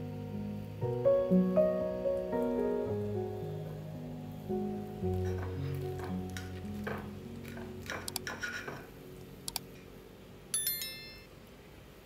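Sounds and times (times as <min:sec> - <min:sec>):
light clicks: 0:09.5 - 0:09.7
bright metallic chime: 0:10.5 - 0:11.4.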